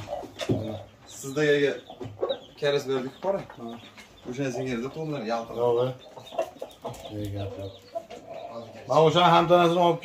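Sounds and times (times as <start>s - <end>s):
rooster clucking: 0.0s - 9.5s.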